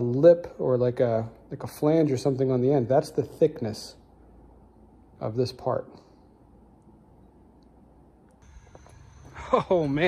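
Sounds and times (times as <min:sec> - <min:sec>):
low steady hum: 0:00.0 - 0:10.0
thin high whine: 0:08.4 - 0:10.0.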